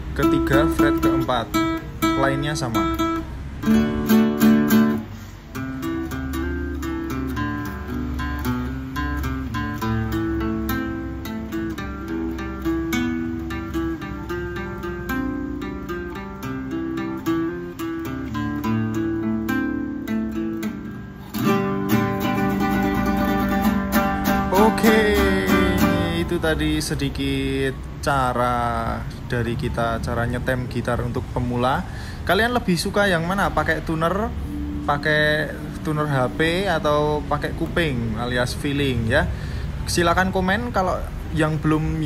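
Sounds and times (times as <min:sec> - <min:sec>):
nylon-string guitar playing: 0:00.0 - 0:42.0.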